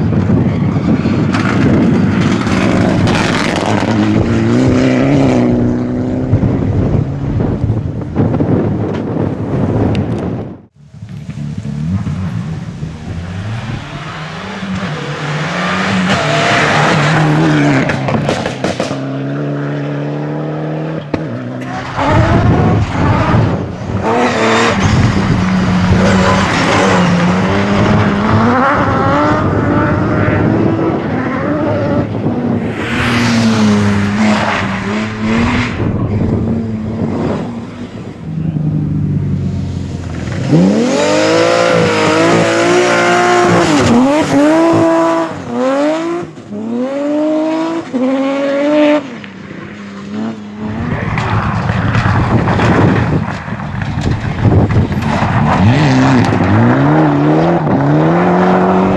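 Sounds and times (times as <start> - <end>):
rally car engines revving: 0.0 - 58.9.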